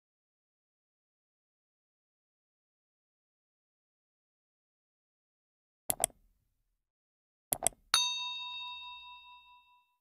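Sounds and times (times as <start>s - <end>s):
bright bell ding: 8.0s - 10.0s.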